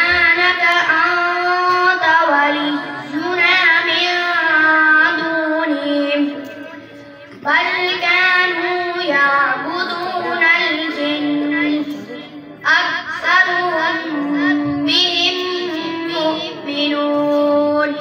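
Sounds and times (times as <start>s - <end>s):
boy chanting melodically: 0.0s - 18.0s.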